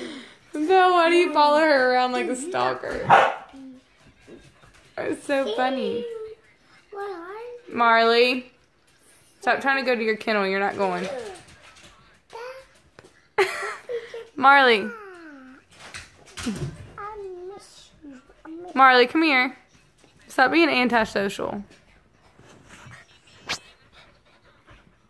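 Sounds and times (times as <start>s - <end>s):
dog barking: 3.0s - 3.5s.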